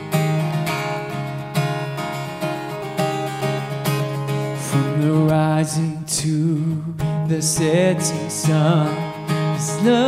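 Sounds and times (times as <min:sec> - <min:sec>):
acoustic guitar strumming: 0:00.0 - 0:10.0
man singing a worship song: 0:04.6 - 0:10.0.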